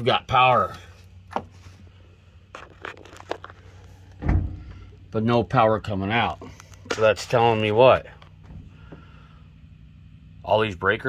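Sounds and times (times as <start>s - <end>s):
steady low hum: 0.0s - 11.0s
clicks and scrapes of equipment: 2.5s - 4.0s.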